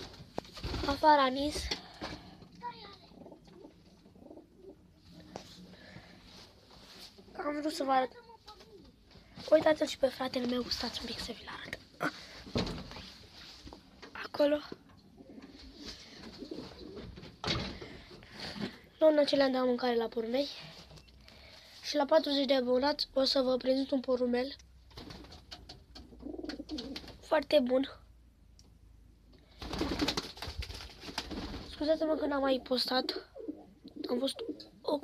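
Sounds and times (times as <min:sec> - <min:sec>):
pigeons cooing: 0:03.2 - 0:05.0, 0:15.1 - 0:17.2, 0:26.0 - 0:27.1, 0:32.6 - 0:34.8.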